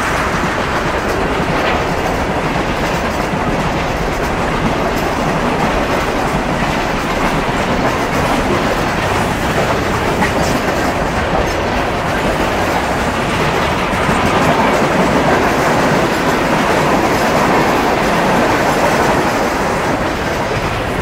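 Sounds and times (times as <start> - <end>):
freight train wheels on rail: 0.0 - 21.0.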